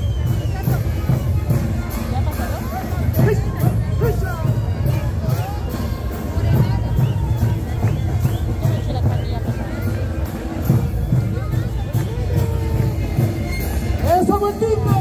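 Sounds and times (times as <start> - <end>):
crowd voices: 0.0 - 15.0
large bass drums beating: 3.0 - 15.0.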